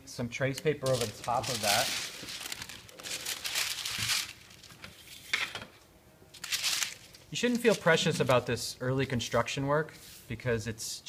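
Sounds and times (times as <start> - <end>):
paper rustling and crinkling: 0.8 - 5.6, 6.3 - 8.4.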